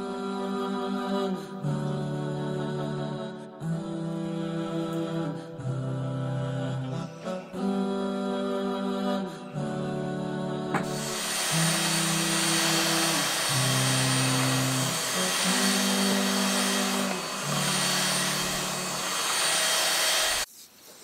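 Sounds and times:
vacuum cleaner running: 0:10.8 - 0:20.5.

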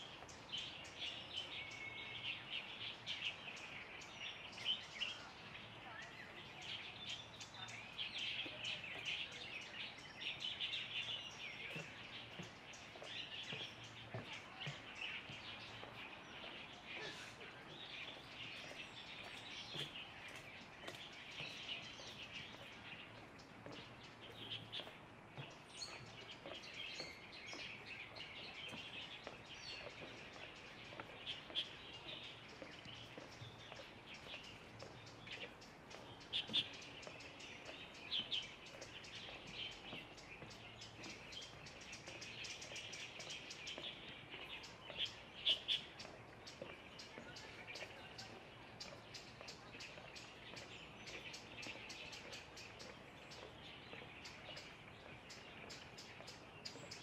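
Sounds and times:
small birds chirping: 0:00.0 - 0:57.0.

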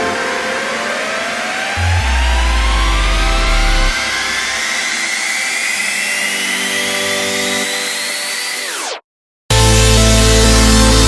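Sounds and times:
electronic dance music build-up: 0:00.0 - 0:11.0.

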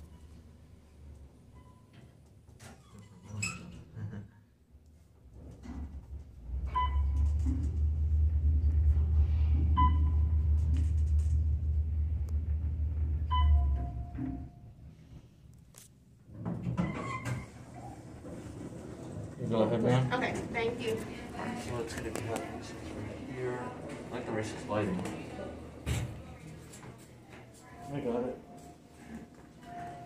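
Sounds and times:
elevator doors sliding open: 0:05.6 - 0:14.6, 0:16.6 - 0:20.8
elevator rumble: 0:06.0 - 0:14.9, 0:16.9 - 0:26.4
elevator arrival tone: 0:06.6 - 0:14.7, 0:27.8 - 0:30.0
elevator floor beeps: 0:06.7 - 0:07.5, 0:09.6 - 0:10.8, 0:13.1 - 0:14.7, 0:27.8 - 0:30.0.

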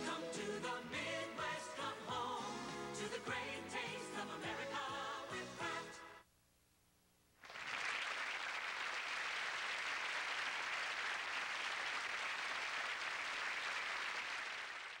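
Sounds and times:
audience applauding: 0:07.4 - 0:15.0.

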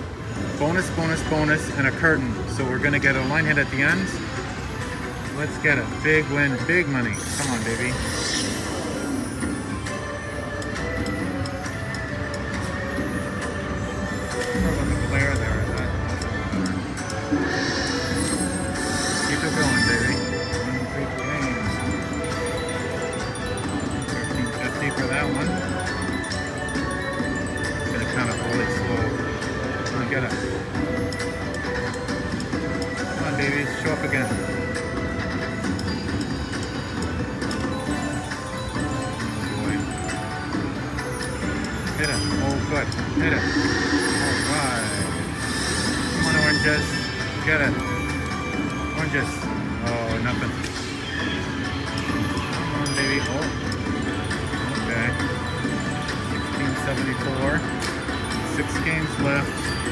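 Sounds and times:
casino background noise: 0:00.0 - 0:50.6
slot machine bonus music: 0:00.0 - 0:59.9.

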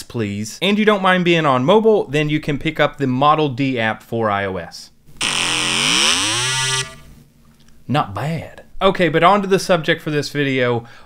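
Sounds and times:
buzzy synth tone: 0:05.2 - 0:07.2.

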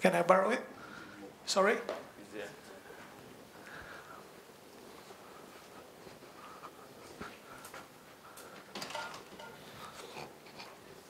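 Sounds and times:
faint murmuring: 0:00.6 - 0:08.7.

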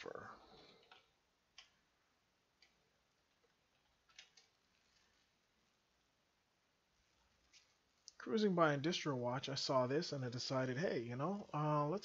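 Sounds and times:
computer keys clicking: 0:00.5 - 0:01.8, 0:02.6 - 0:04.8.

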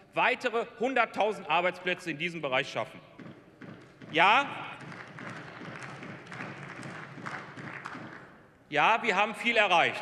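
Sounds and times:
scattered clapping: 0:03.3 - 0:08.4.

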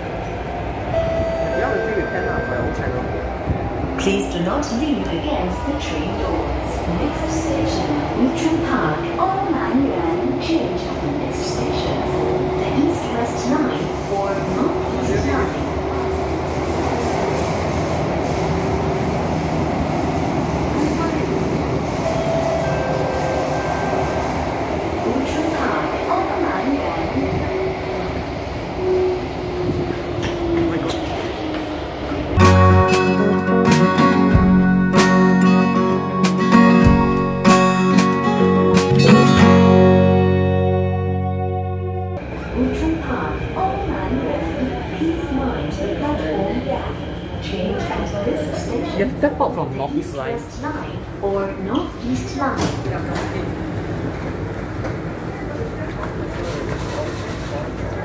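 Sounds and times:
metro train rumble and hum: 0:00.0 - 0:58.0
plucked-string music: 0:32.4 - 0:42.2.

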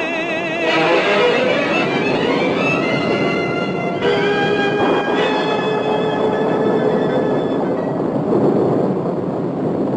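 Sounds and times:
orchestral music with strings: 0:00.1 - 0:08.0.

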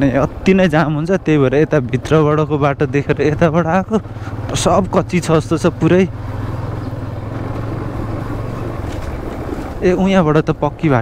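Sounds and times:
person talking: 0:00.0 - 0:06.1, 0:09.8 - 0:11.0
motorcycle engine humming: 0:00.0 - 0:11.0.

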